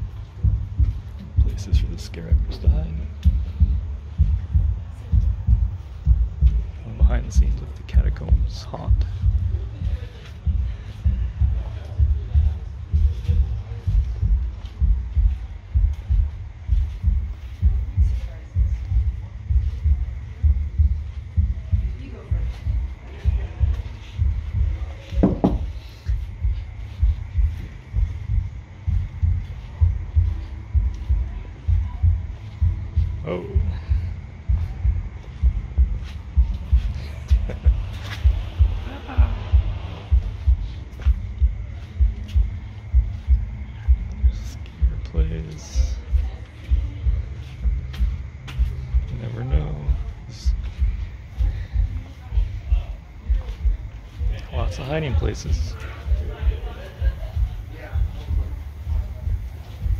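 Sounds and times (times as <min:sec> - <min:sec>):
heartbeat double thumps: 0:00.0 - 0:59.9.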